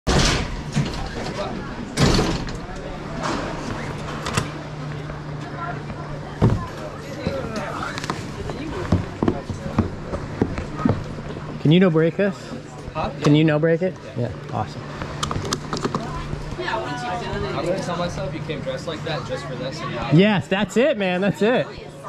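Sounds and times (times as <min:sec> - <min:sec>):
steady low hum: 0:00.1 - 0:22.0.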